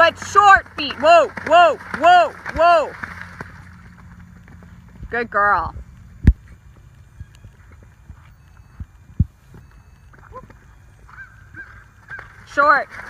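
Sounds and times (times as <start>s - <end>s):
wind rumble on microphone: 3.8s - 12.5s.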